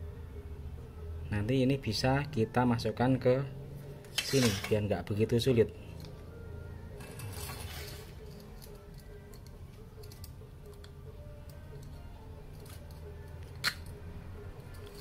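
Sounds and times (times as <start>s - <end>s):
soft background music: 0.0s - 15.0s
small plastic and metal parts rattling: 14.7s - 15.0s.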